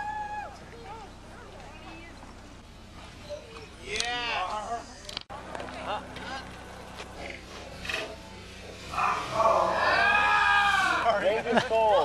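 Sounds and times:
whooping cries: 0:00.0 - 0:00.6, 0:08.9 - 0:11.2
people shouting and yelling: 0:00.0 - 0:02.1, 0:08.9 - 0:12.0.

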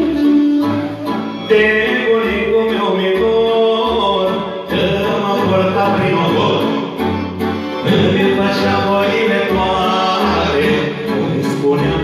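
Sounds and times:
amplified folk band backing: 0:00.0 - 0:12.0
man singing into microphone: 0:01.4 - 0:12.0.

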